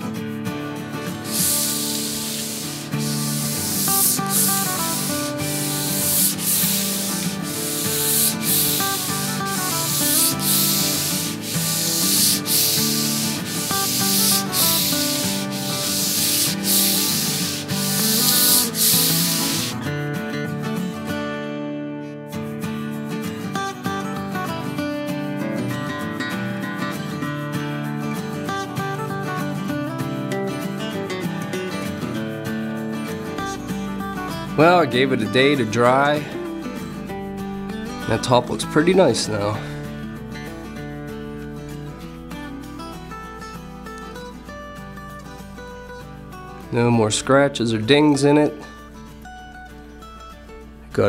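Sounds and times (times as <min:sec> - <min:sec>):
background guitar music: 0:00.0 - 0:51.0
hand sanding strokes: 0:01.1 - 0:19.8.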